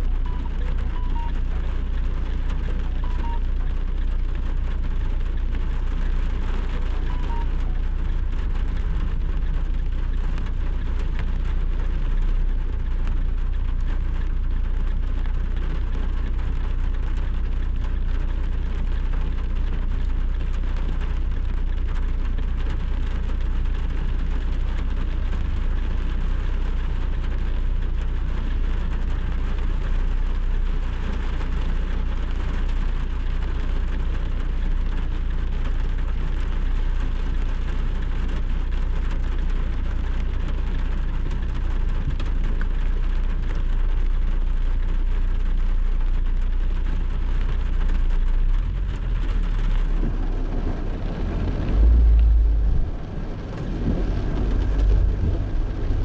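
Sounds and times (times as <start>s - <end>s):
car engine idling: 0.0s - 56.0s
heavy rain on windscreen: 0.0s - 56.0s.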